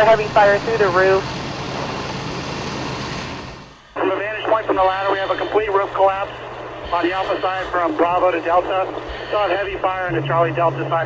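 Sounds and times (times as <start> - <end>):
water pump hissing: 0.0 - 10.9
diesel engines running: 0.0 - 11.0.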